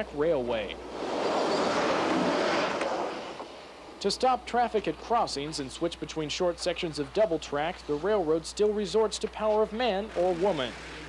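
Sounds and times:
vehicle passing by rushing: 0.8 - 3.7.

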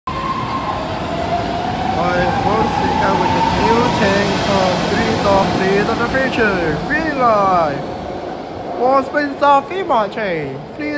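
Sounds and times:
train cars rumbling on rails: 0.1 - 10.8
voices: 1.9 - 10.9.

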